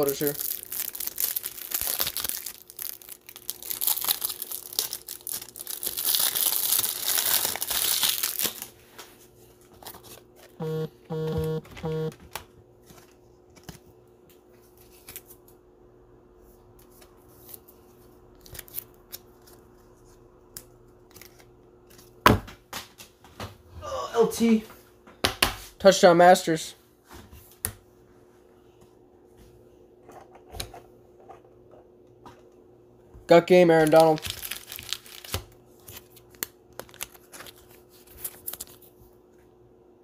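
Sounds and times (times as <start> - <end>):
plastic wrapping crinkling: 0.0 - 9.0, 33.7 - 38.9
short pulsing buzz: 10.6 - 12.1.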